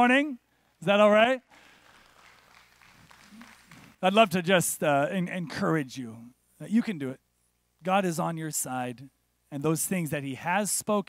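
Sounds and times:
light scattered applause: 1.5 - 4.0.

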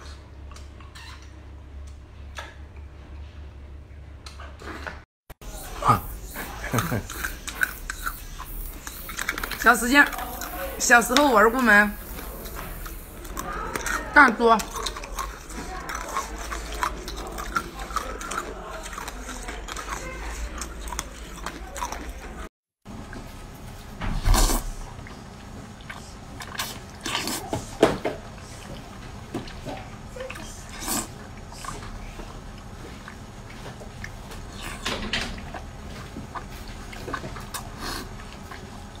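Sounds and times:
chewing jelly with clicks: 6.4 - 11.4, 12.0 - 22.5, 24.4 - 27.8, 28.4 - 39.0
wet smacking and slurping bites: 6.4 - 22.5, 25.8 - 27.8.

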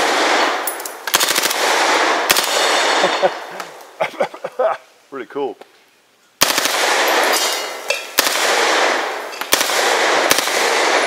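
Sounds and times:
submachine gun full-auto bursts: 1.1 - 3.1, 6.4 - 7.3, 8.2 - 11.0.

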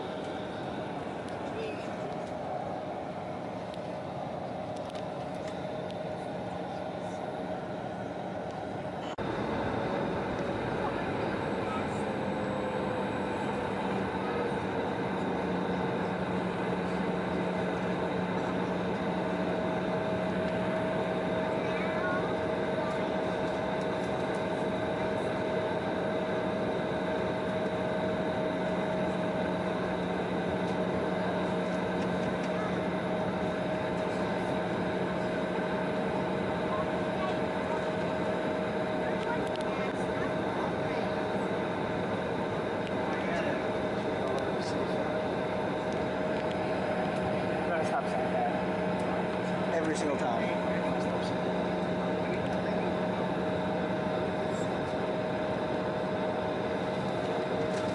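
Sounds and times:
jet engines idling: 0.0 - 57.9.

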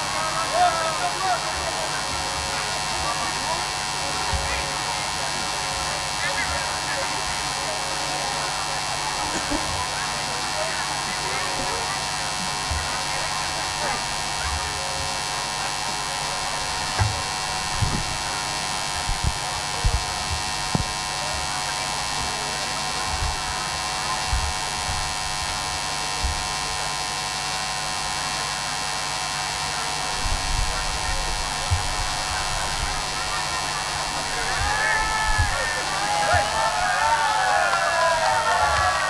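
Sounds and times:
electrical mains hum: 0.0 - 39.0
low thumps: 16.7 - 18.4.

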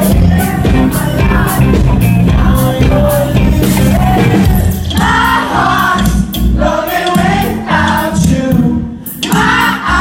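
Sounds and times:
drum and cymbal hits: 0.0 - 10.0
live pop-rock band playing: 0.0 - 10.0
person singing lead vocal: 0.0 - 10.0.

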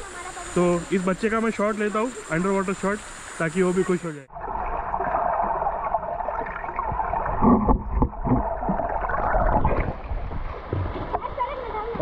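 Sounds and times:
underwater rush with bubbling: 0.0 - 12.0
dull underwater thumps: 6.3 - 12.0.

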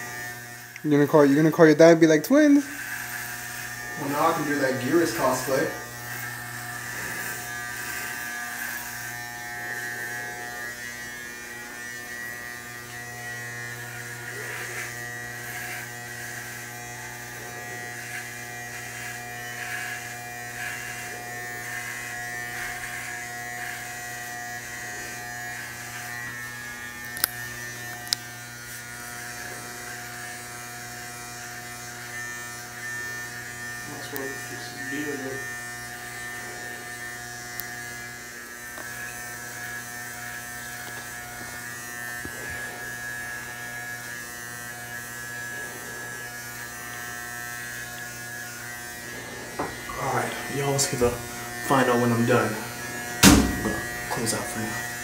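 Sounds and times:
electric hair clippers buzzing: 0.0 - 55.0.

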